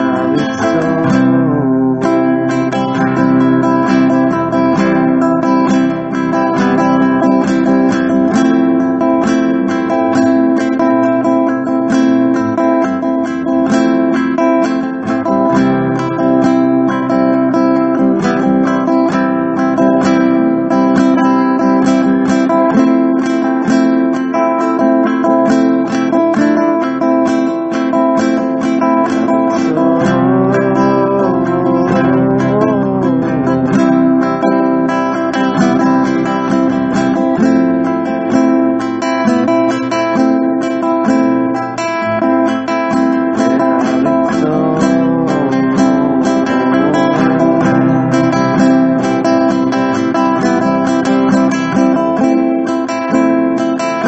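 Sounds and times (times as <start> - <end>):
acoustic guitar strumming: 0.0 - 54.0
guitar melody line: 0.0 - 54.0.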